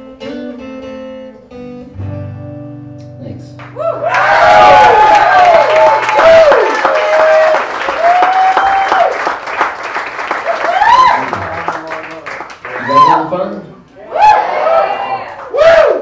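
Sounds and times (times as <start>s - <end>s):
acoustic song: 0.0s - 5.0s
audience applauding and cheering: 3.6s - 16.0s.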